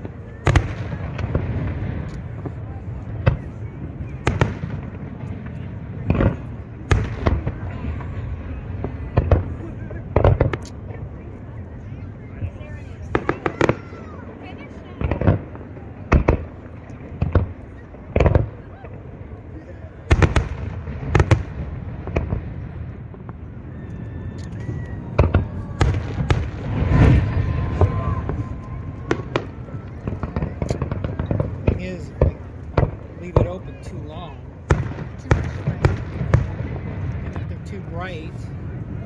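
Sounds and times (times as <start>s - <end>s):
fireworks booming: 0.0s - 39.0s
fireworks crackling: 0.0s - 39.0s.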